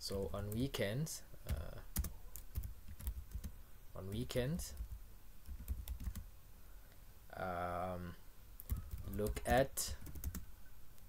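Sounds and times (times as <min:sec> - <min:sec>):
computer keyboard typing: 0:01.5 - 0:03.6, 0:04.7 - 0:06.2, 0:08.6 - 0:10.5.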